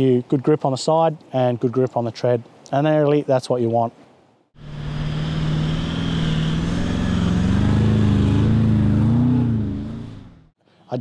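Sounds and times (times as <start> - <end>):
engine running under load: 4.6 - 10.5.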